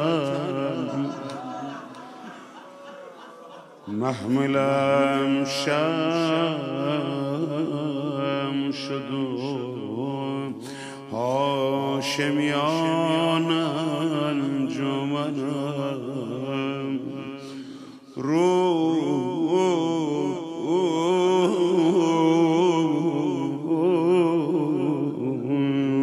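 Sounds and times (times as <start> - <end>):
man chanting into a microphone: 0.0 - 2.4, 3.8 - 26.0.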